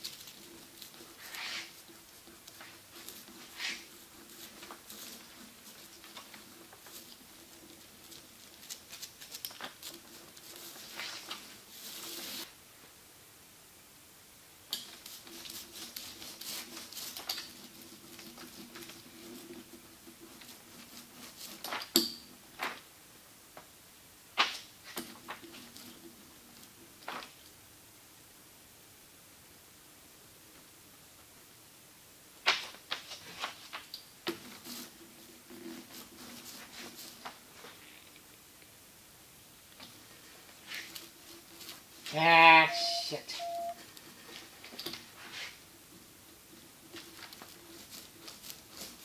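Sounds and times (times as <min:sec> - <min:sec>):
hand roller rolling on veneer: 0:00.0 - 0:12.5, 0:14.8 - 0:22.8, 0:24.8 - 0:27.3, 0:33.1 - 0:37.9, 0:39.7 - 0:42.2, 0:43.4 - 0:49.0.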